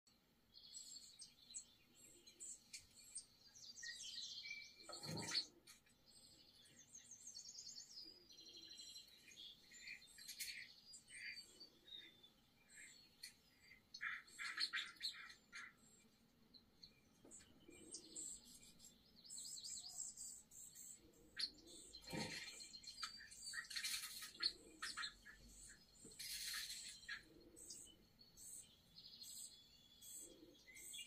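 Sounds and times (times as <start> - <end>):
small birds chirping and trilling: 0.1 - 31.0.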